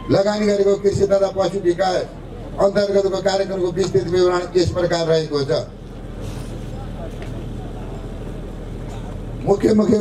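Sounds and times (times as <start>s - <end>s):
distant voices: 0.0s - 10.0s
steady low hum: 0.0s - 10.0s.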